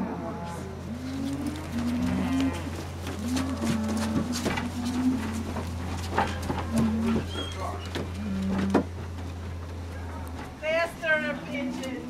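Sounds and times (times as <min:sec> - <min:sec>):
cattle mooing: 0:00.0 - 0:08.9
footsteps on wooden steps: 0:01.2 - 0:11.2.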